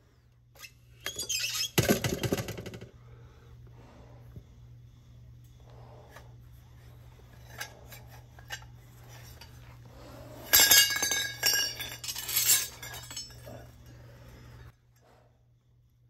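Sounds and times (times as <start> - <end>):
low steady hum: 0.0 - 16.0
copper pipes clinking: 10.4 - 13.9.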